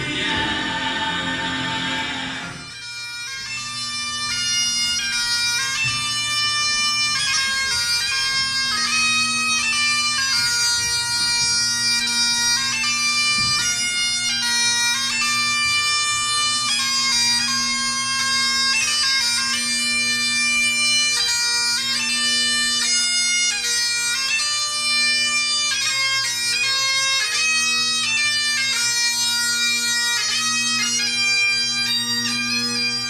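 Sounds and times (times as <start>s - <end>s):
group of voices singing: 0.0s - 2.8s
bagpipe playing a tune: 0.0s - 33.0s.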